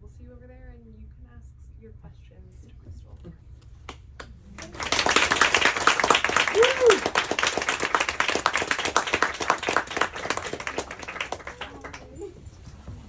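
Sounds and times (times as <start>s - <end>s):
audience applause: 4.5s - 12.4s.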